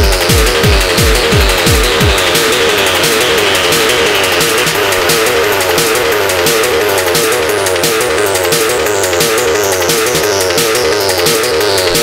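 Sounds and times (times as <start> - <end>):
deep techno kick drum: 0.0 - 12.0
repeating synth riff: 0.0 - 12.0.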